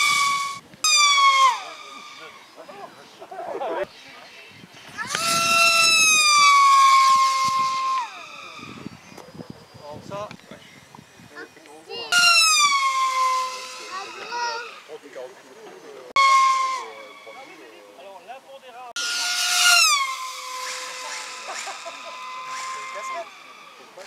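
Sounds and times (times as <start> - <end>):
model airplane engine passing: 12.4 - 15.0, 19.0 - 24.0.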